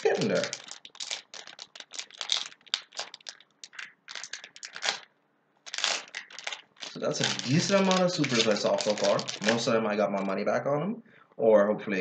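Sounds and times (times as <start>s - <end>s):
foil wrapper crinkling: 0.0s - 10.3s.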